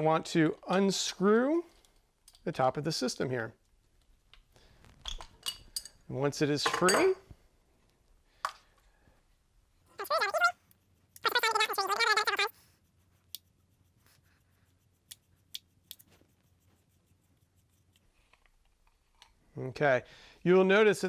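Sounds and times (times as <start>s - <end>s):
threaded cap squeaking as twisted: 9.9s - 12.6s.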